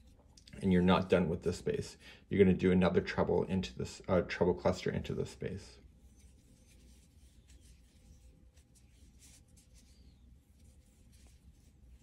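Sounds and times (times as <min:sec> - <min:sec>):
low room hum: 0:00.0 - 0:12.0
crochet hook scratching yarn: 0:05.9 - 0:12.0.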